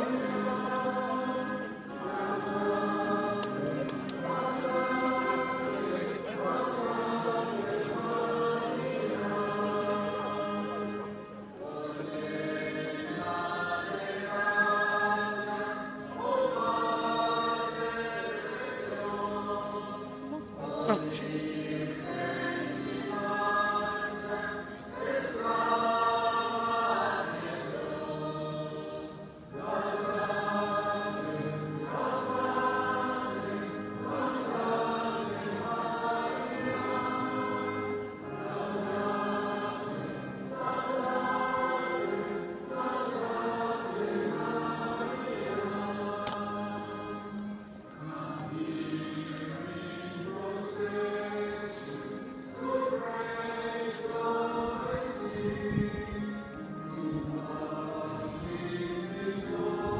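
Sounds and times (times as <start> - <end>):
crowd singing a hymn: 0.0 - 59.9.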